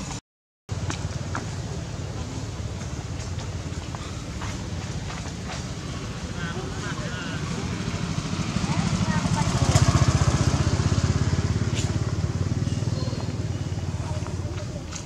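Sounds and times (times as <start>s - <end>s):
motorcycle engine passing by: 1.1s - 14.9s.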